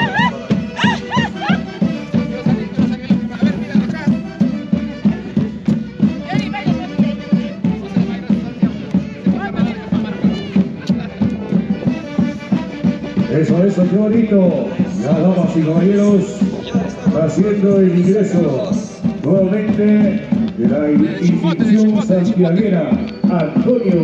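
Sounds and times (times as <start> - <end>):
festival band with reedy melody: 0.0 - 24.0.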